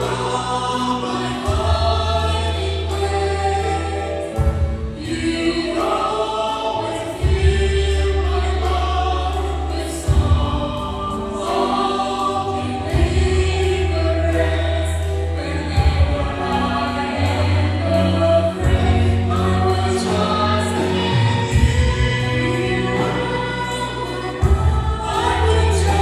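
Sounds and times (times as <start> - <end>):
singers singing a hymn: 0.0 - 26.0
slow held bass chords: 0.0 - 26.0.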